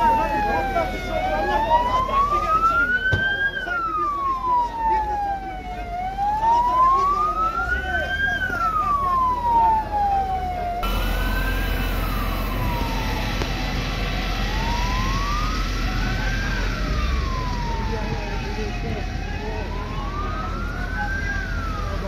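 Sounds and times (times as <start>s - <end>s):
emergency vehicle siren wailing: 0.0s - 22.0s
voices: 0.0s - 22.0s.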